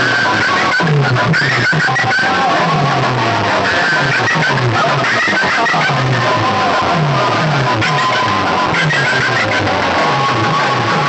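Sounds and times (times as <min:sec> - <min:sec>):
loud music from loudspeakers: 0:00.0 - 0:11.0.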